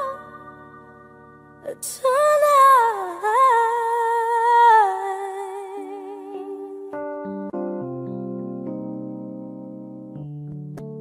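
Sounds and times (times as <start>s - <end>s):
woman singing wordless vibrato: 0.0s - 6.9s.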